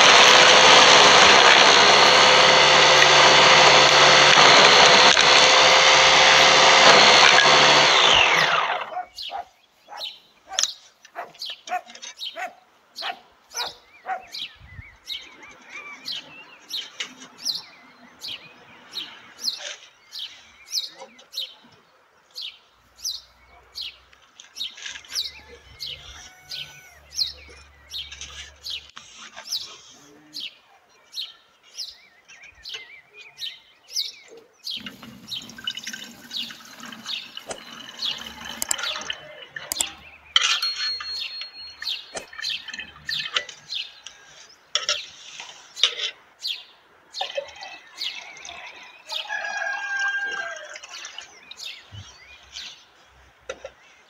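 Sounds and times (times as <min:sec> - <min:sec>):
small birds chirping: 0:08.3 - 0:54.0
metal pot and glass jar clattering: 0:40.4 - 0:43.6.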